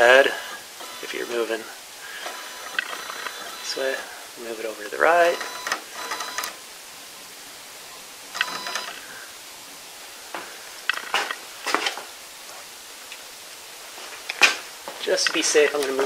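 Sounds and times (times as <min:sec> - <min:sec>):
stepper motors whining: 0:00.0 - 0:04.0, 0:05.1 - 0:06.6.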